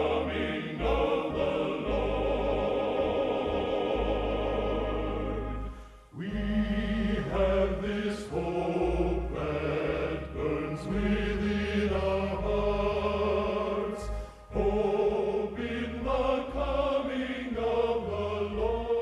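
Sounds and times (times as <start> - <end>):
men's choir singing a hymn: 0.0 - 19.0.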